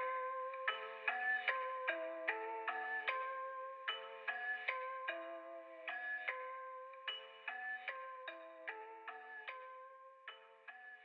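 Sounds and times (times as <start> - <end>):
music-box bell melody: 0.0 - 11.0.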